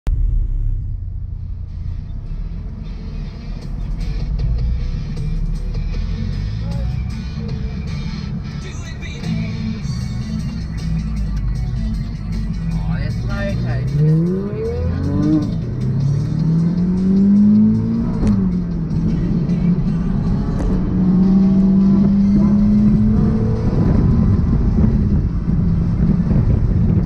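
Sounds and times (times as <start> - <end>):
car engine running: 0.0 - 27.0
music: 1.4 - 27.0
people talking: 12.7 - 14.7.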